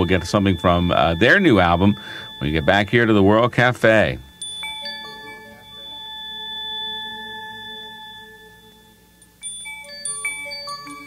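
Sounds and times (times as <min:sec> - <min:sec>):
bell-like chime tone: 0:00.0 - 0:11.0
glockenspiel-like notes: 0:00.0 - 0:11.0.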